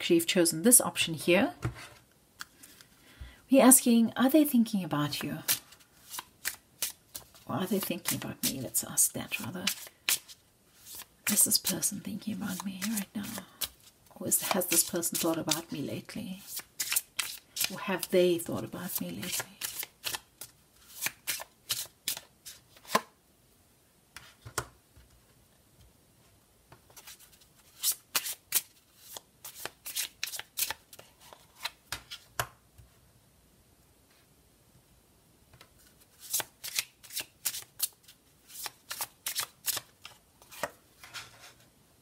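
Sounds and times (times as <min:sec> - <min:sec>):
cards shuffled by hand: 0:05.4 - 0:08.7, 0:09.3 - 0:11.8, 0:12.4 - 0:15.8, 0:16.4 - 0:18.1, 0:18.9 - 0:23.1, 0:26.9 - 0:32.4, 0:35.8 - 0:41.2.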